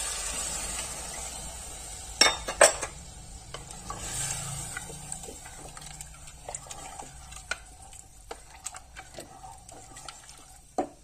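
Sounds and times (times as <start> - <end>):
simmering liquid hiss: 0.0 - 10.9
spatula scraping pot: 3.5 - 11.0.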